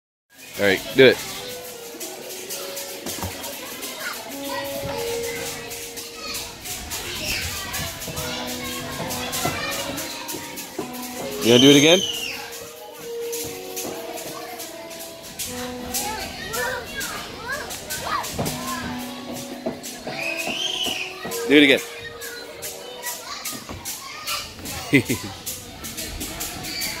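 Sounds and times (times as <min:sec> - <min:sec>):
children playing: 0:00.3 - 0:27.0
background music of held notes: 0:00.4 - 0:26.7.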